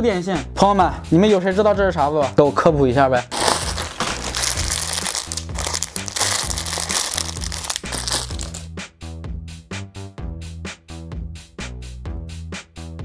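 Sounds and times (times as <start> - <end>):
background music with steady beat: 0.0 - 13.0
plastic packaging crinkling: 3.3 - 8.6.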